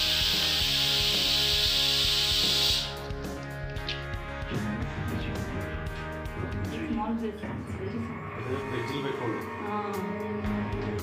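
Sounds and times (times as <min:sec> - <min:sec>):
loud steady hiss: 0:00.0 - 0:03.0
background music with beat and guitar: 0:00.0 - 0:07.1, 0:09.9 - 0:11.0.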